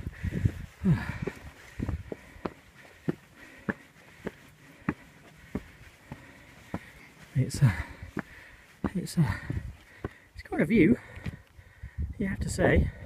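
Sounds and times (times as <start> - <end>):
footsteps on stone steps: 0.0 - 11.6.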